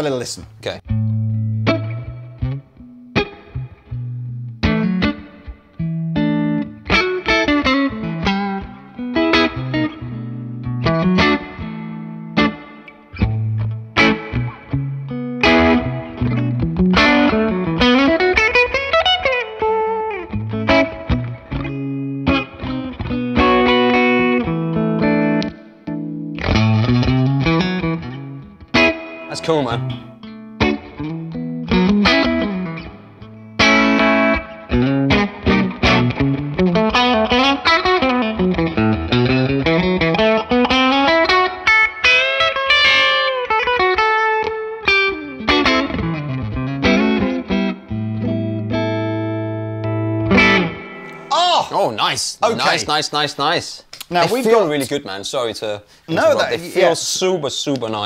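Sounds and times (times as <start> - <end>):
electric guitar through amp: 0.9 - 51.3.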